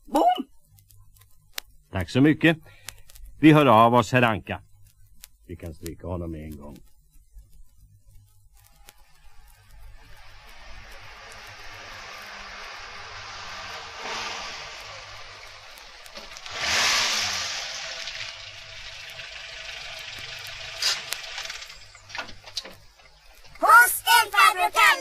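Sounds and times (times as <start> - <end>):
sharp clicks: 2.6 - 3.4, 4.6 - 25.0
steady rushing noise: 8.4 - 25.0.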